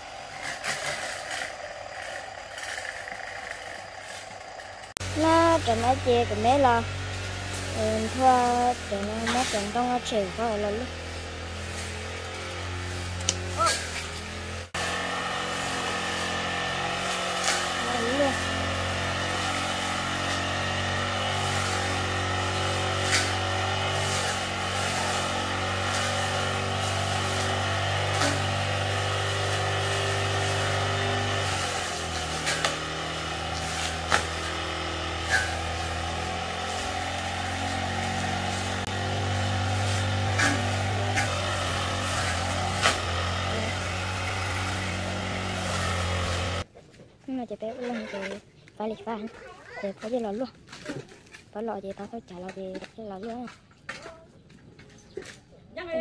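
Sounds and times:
brush cutter cutting grass: 0.0s - 46.7s, 47.4s - 53.6s.

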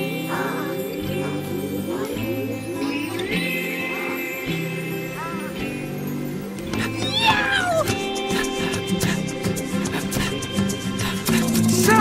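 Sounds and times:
background music: 0.0s - 12.0s
cat meowing: 7.0s - 8.0s.

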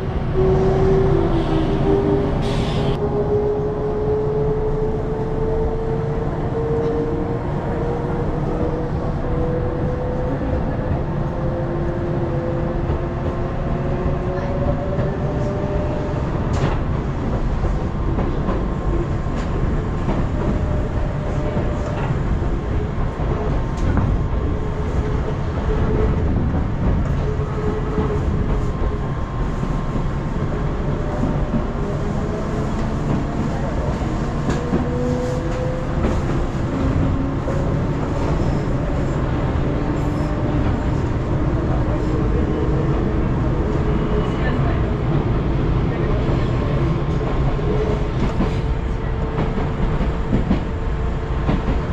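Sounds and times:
train wheels rumbling on rails: 0.0s - 51.9s.

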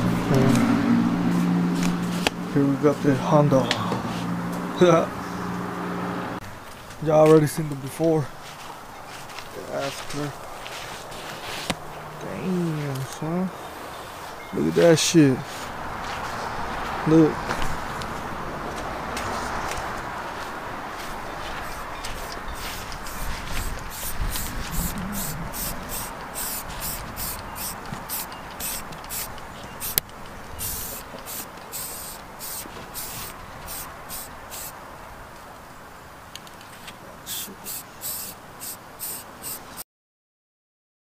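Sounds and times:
spray can hissing bursts: 21.6s - 30.0s, 30.6s - 34.8s, 37.3s - 39.8s.

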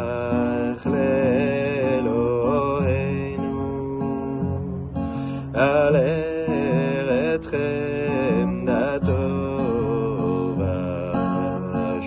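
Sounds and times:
man singing: 0.0s - 12.0s
strummed acoustic guitar: 0.0s - 12.0s.

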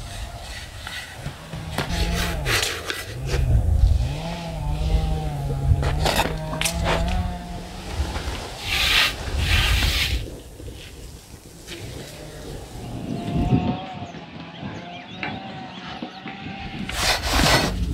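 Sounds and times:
wind rumble on microphone: 0.0s - 17.9s.

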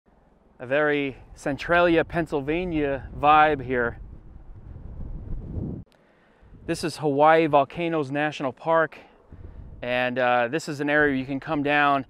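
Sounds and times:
wind buffeting microphone: 1.0s - 6.9s, 9.2s - 10.0s.

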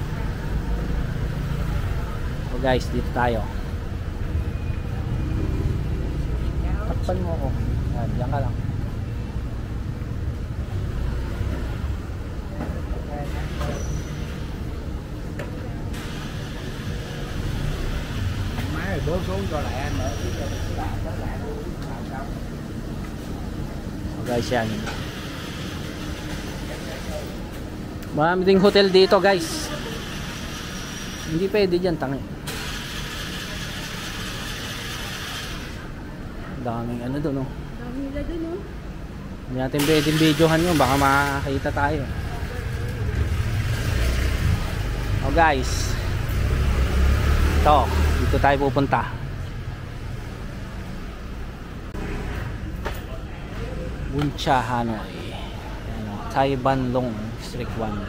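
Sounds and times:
city street rumble: 0.0s - 58.0s
faint voices: 49.0s - 58.0s.

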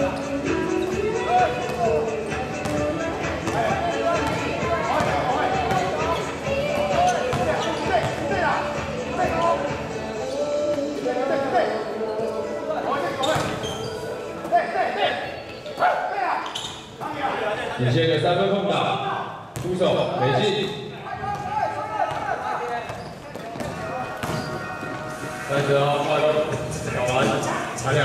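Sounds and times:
sneakers squeaking: 0.0s - 17.8s, 19.5s - 25.4s
players' voices: 0.0s - 28.0s
basketball bouncing on court floor: 2.6s - 8.2s, 21.3s - 22.3s, 22.9s - 24.6s.

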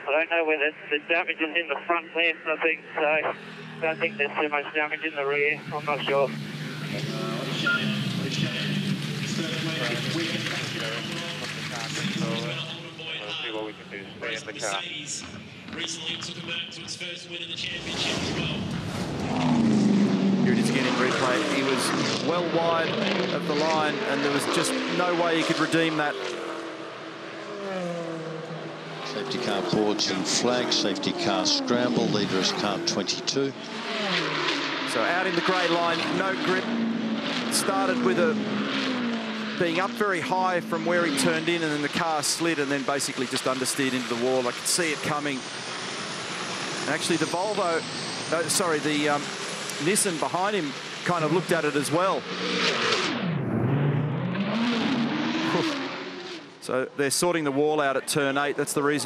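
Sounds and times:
racing cars passing at high revs: 3.2s - 16.0s, 17.7s - 56.7s.

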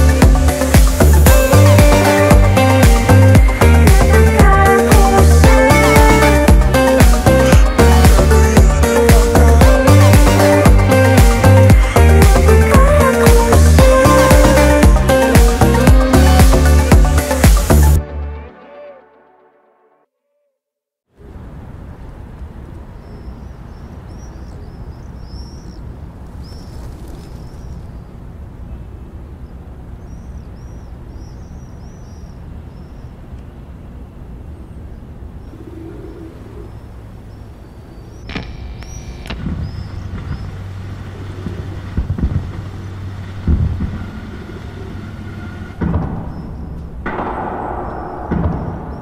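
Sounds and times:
birds chirping: 0.0s - 18.0s, 21.8s - 49.0s
steady low rumble: 0.0s - 18.0s, 27.4s - 49.0s
deep steady hum: 0.0s - 18.1s, 32.6s - 49.0s
heavy low thuds: 41.5s - 44.3s, 45.7s - 49.0s.

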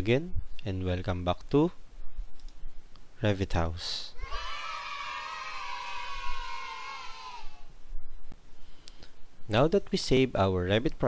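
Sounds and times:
faint click: 8.8s - 9.2s.

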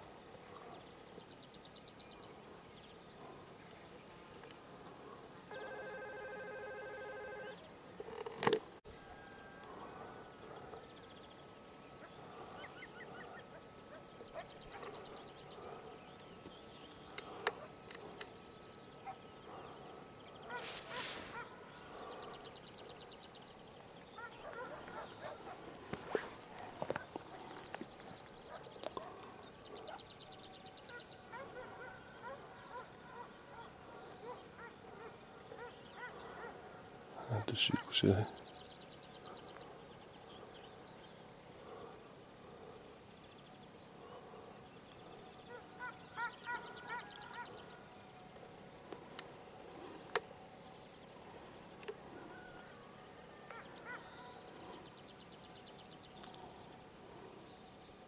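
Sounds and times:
pulsed insect chirring: 0.9s - 57.8s
horn-like tone: 5.5s - 7.8s
faint bird calls: 45.1s - 47.9s, 51.2s - 57.4s.

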